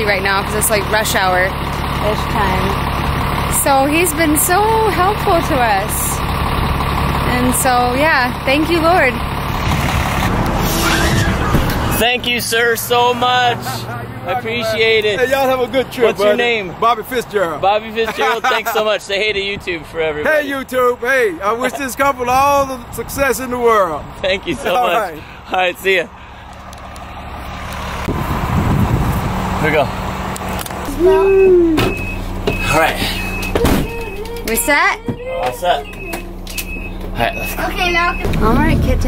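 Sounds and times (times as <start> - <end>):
traffic on busy road: 0.0 - 39.0
vehicle engine hum: 0.0 - 39.0.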